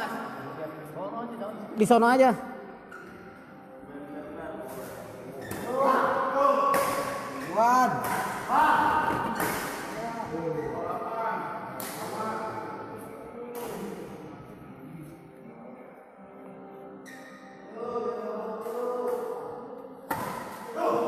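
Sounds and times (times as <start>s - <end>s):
players' squeaks or calls: 5.3s - 6.0s, 17.0s - 17.7s
racket hitting shuttlecock: 6.7s - 7.4s, 8.0s - 9.9s, 20.1s - 20.7s.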